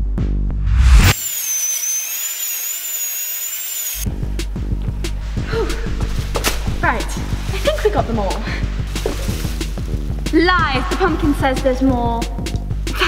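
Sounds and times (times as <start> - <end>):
music with bass line: 0.0 - 1.1, 4.0 - 13.0
high-pitched wavering whine: 0.7 - 4.8.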